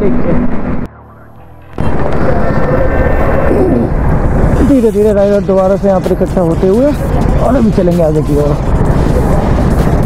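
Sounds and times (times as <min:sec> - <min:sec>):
bus passing: 0:00.0 - 0:07.6
low rumble of traffic: 0:00.0 - 0:10.0.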